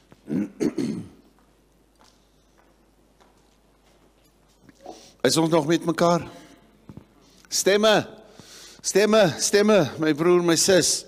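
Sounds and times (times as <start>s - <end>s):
short breath: 4.8s - 5.2s, 8.3s - 8.8s.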